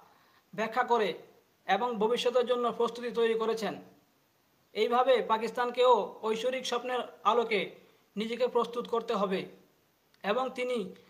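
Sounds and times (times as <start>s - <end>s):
man narrating: 0.6s - 3.8s, 4.7s - 9.6s, 10.2s - 11.0s.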